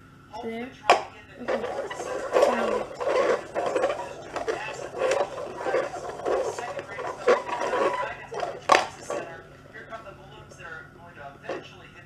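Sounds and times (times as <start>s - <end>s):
plastic cups clacking on floor: 0.9s - 10.0s.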